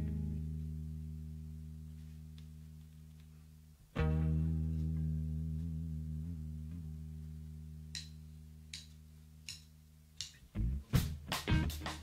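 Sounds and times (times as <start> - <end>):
drumstick count-in ticks: 7.9 - 10.5.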